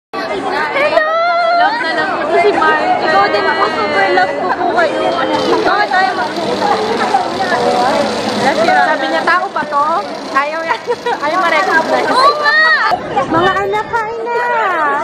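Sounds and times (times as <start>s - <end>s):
background chatter: 0.2s - 15.0s
women talking: 0.8s - 15.0s.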